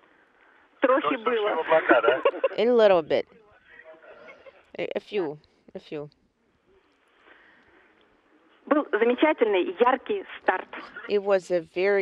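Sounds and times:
faint radio link hiss: 0:00.0 - 0:12.0.

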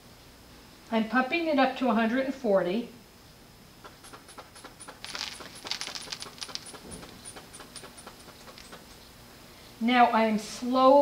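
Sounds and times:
quick clicks: 0:03.8 - 0:09.0.

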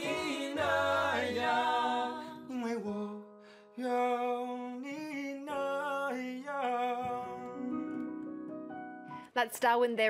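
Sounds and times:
piano accompaniment: 0:00.0 - 0:09.4
man singing pop song: 0:02.4 - 0:08.1.

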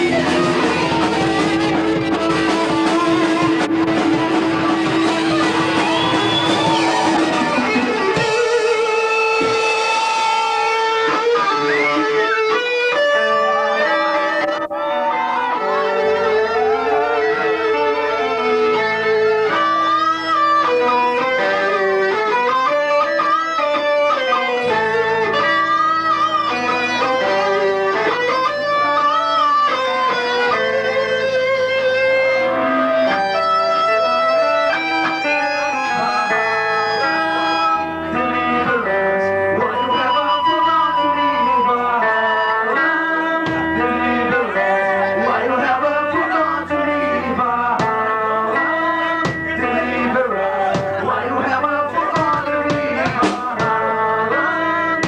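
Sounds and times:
low bass notes: 0:00.0 - 0:22.2
electric guitars playing melody: 0:00.0 - 0:55.0.

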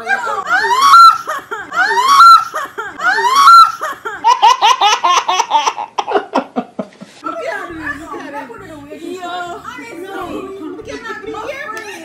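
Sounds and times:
baby laughing: 0:00.0 - 0:06.4.

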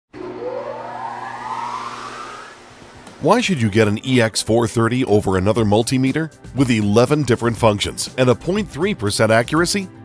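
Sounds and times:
rising whoosh: 0:00.1 - 0:03.4
steady low hum: 0:00.2 - 0:03.5.

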